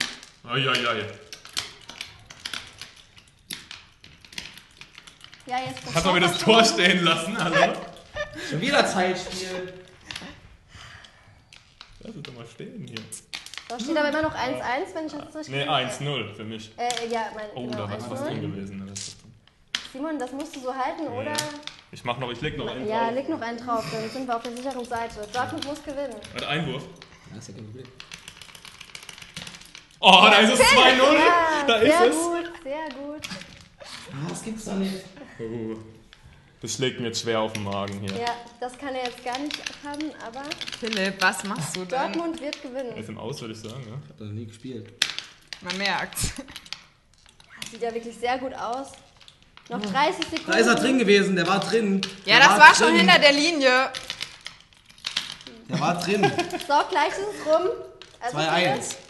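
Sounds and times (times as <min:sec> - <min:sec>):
tabletop football clicks and taps: 0:11.5 - 0:14.4, 0:24.3 - 0:31.4, 0:37.2 - 0:43.0, 0:44.8 - 0:57.2.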